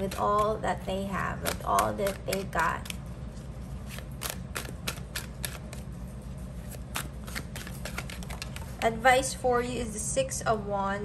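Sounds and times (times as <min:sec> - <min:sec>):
cards being shuffled: 0:00.0 - 0:00.6, 0:01.2 - 0:09.0.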